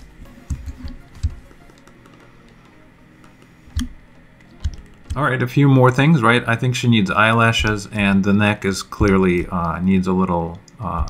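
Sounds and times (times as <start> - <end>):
faint steady background noise: 0.0 - 11.0
keyboard keys clicking: 3.7 - 5.2.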